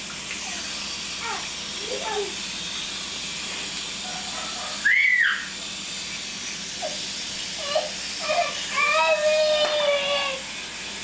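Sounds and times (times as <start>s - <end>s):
water spraying from hose nozzle: 0.0s - 11.0s
toddler squealing: 4.8s - 5.5s.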